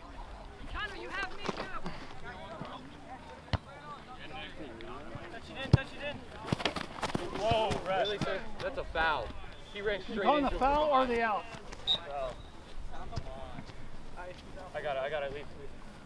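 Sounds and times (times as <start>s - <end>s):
distant shouting players: 0.6s - 15.9s.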